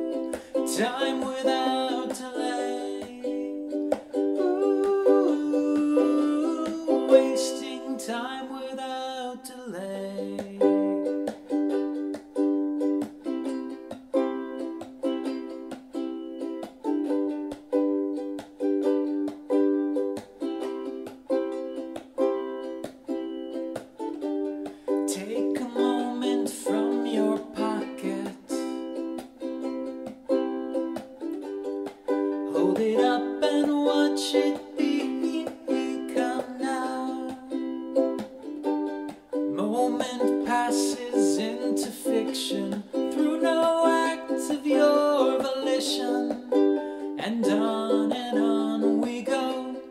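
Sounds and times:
man singing: 0:00.0 - 0:11.3, 0:24.9 - 0:29.2, 0:32.4 - 0:38.5, 0:39.5 - 0:49.9
ukulele strumming: 0:00.0 - 0:49.9.

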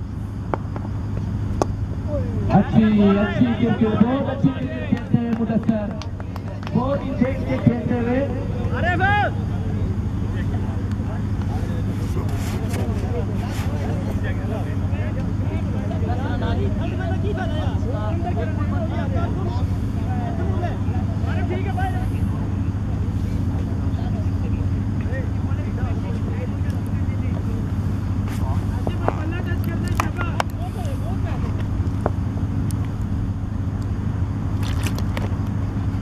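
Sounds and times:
low engine-like hum: 0:00.0 - 0:36.0
faint distant voices: 0:02.0 - 0:32.2.

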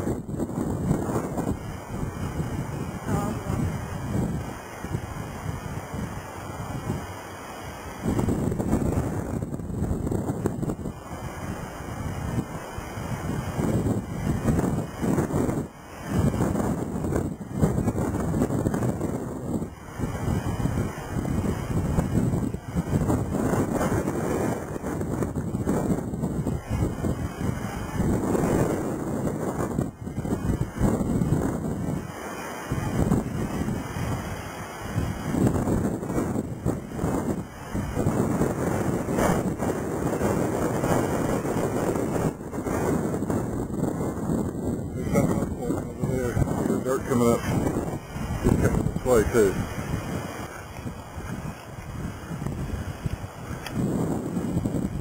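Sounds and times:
gusty wind on microphone: 0:00.0 - 0:55.0.

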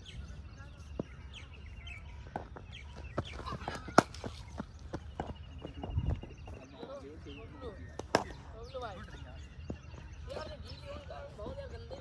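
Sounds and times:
birds calling: 0:00.0 - 0:12.0
cricket bat striking ball: 0:03.6 - 0:04.3.

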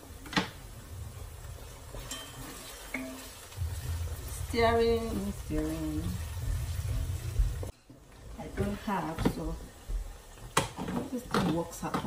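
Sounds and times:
meat sizzling in a pot: 0:00.0 - 0:12.0
wooden spoon stirring pot: 0:00.1 - 0:12.0.

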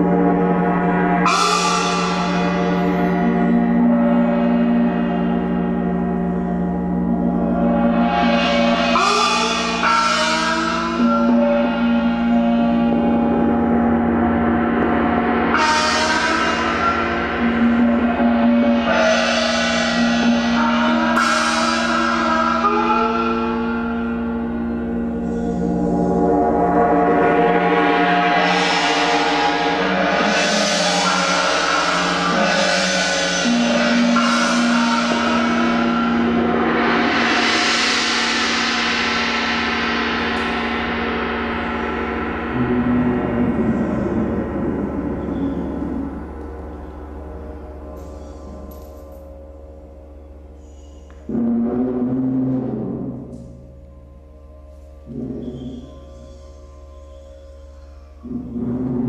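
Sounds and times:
gongs ringing: 0:00.0 - 0:59.0
low hum: 0:02.2 - 0:59.0.

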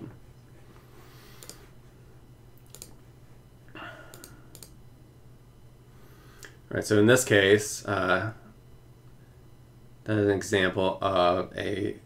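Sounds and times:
low steady hum: 0:00.0 - 0:12.0
computer clicks: 0:01.3 - 0:01.6, 0:02.6 - 0:03.0, 0:04.1 - 0:04.8.

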